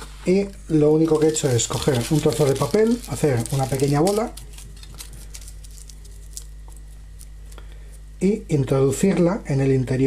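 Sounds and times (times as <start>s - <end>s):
low electrical hum: 0.0s - 10.0s
aluminium foil crinkling: 0.9s - 8.1s.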